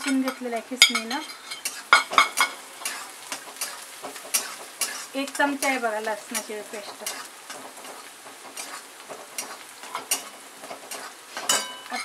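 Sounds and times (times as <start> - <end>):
metal spatula scraping a pan: 0.0 - 12.0
onion frying in oil: 0.0 - 12.0.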